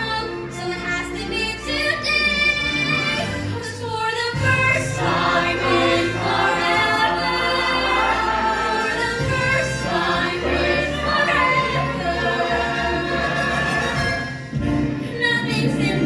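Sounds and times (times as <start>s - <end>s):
instrumental accompaniment: 0.0s - 16.0s
young voices singing in chorus: 4.4s - 14.2s.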